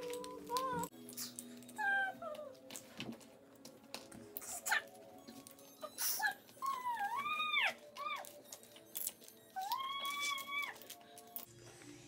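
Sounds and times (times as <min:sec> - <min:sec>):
plastic bricks clicking and rattling: 0:07.8 - 0:11.5.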